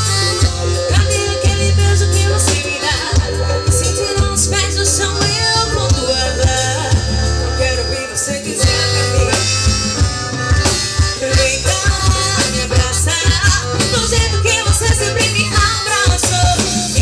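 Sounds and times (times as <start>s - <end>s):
drum kit beat: 0.0s - 17.0s
electric bass line: 0.0s - 17.0s
electric guitar: 0.0s - 17.0s
piano accordion: 0.0s - 17.0s
woman singing: 0.7s - 9.6s, 11.2s - 17.0s.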